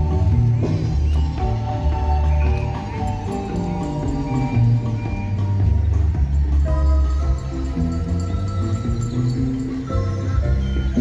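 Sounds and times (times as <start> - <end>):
marimba ensemble playing: 0.0 - 11.0.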